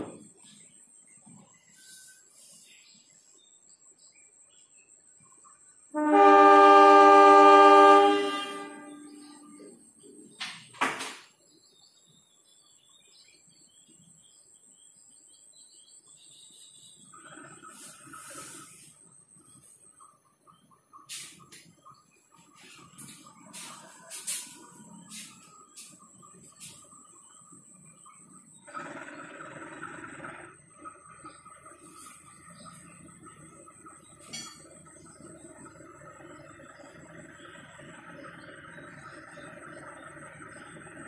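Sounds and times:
locomotive horn blast: 6.0s - 9.7s.

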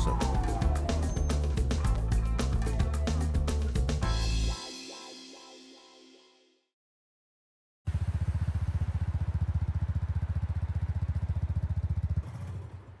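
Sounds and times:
motorcycle engine idling: 7.9s - 13.0s.

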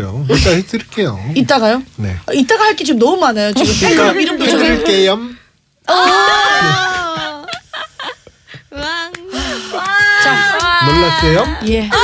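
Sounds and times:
women shrieking with laughter: 5.9s - 8.2s, 9.5s - 12.0s.

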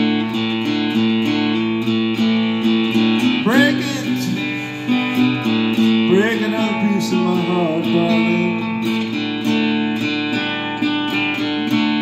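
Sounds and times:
strummed guitar music: 0.0s - 12.0s.

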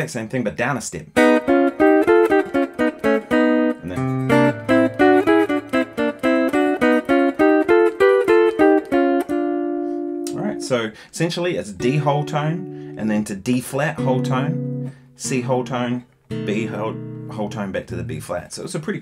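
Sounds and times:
electric guitar picked notes: 1.2s - 10.7s, 11.7s - 13.2s, 14.0s - 18.2s.

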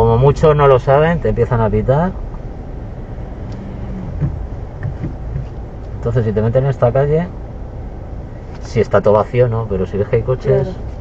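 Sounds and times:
car engine and tyre rumble: 0.0s - 11.0s.

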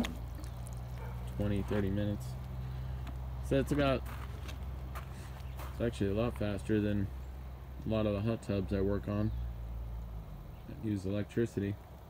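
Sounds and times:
pond pump humming: 0.0s - 12.0s.

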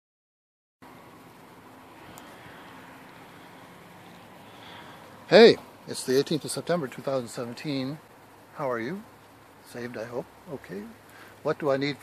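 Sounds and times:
background hiss: 0.8s - 12.0s.

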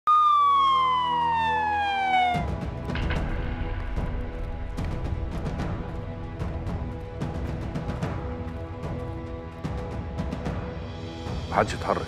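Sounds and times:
police siren sliding down: 0.1s - 2.6s.

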